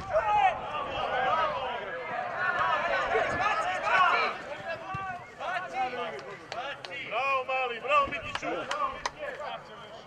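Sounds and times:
men shouting: 0.1s - 4.8s
sharp claps: 6.0s - 7.1s, 8.2s - 9.4s.

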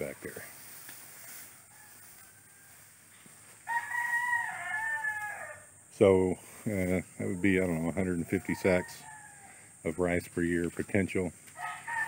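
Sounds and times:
rooster crowing: 1.2s - 5.8s, 7.4s - 9.7s, 11.6s - 12.0s.

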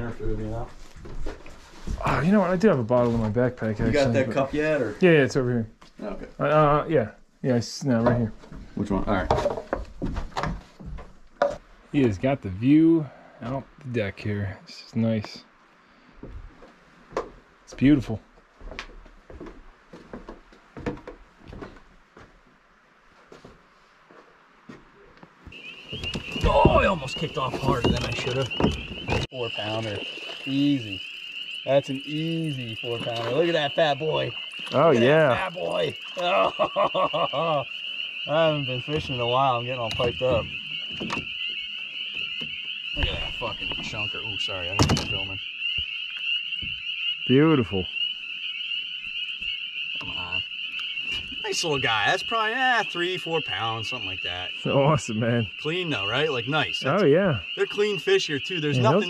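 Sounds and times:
frogs calling: 25.1s - 59.0s
thin high steady tone: 25.5s - 45.4s, 51.1s - 59.0s.

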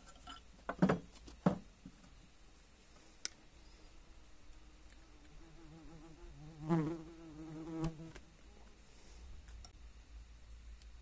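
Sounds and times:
insect buzzing: 3.6s - 9.2s.

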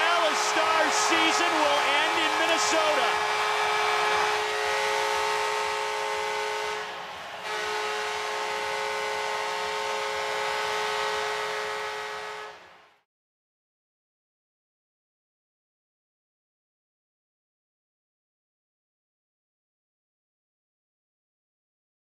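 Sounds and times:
arena horn blast: 0.0s - 12.7s
arena crowd noise: 0.0s - 13.0s.

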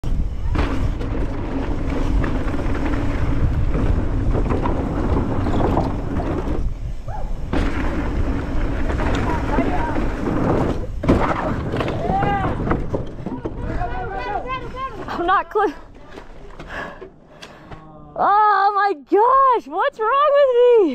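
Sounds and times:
wind on microphone: 0.0s - 14.8s
tyres rumbling over dirt: 0.0s - 17.0s
bike rattling and knocking: 0.0s - 17.2s
bike jolt onto wooden ramp: 0.1s - 15.1s.

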